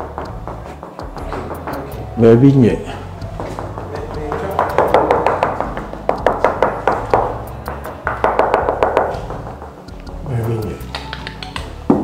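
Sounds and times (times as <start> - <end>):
hand knocking on wall: 0.0 - 2.0, 3.2 - 9.9.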